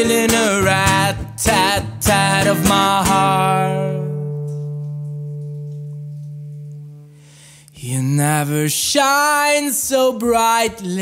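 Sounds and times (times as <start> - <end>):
acoustic guitar chord ringing: 0.0 - 7.4.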